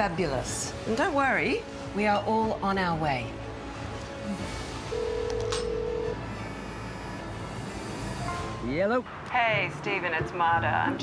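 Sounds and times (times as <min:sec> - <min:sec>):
soft background music: 0:00.0 - 0:11.0
telephone ringing tone: 0:04.9 - 0:07.3.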